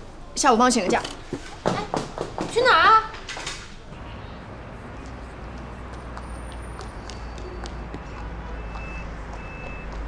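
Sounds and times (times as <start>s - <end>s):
reversing alarm beeps: 7.0s - 10.0s.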